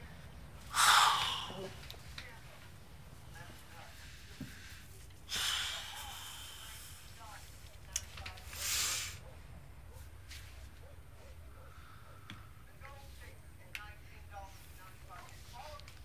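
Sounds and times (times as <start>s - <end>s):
person sharp breath: 0.7s - 1.7s, 4.0s - 7.2s, 8.6s - 9.2s.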